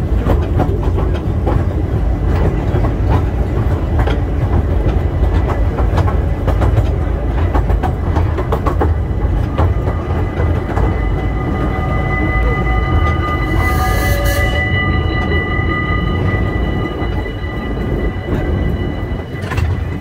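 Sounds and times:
wheels clicking and knocking: 0.0s - 11.8s
train carriages rumbling on track: 0.0s - 20.0s.

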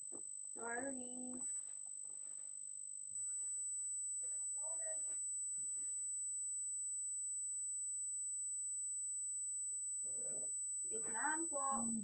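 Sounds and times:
faint low hum: 0.5s - 2.5s, 3.2s - 6.8s, 9.7s - 12.0s.

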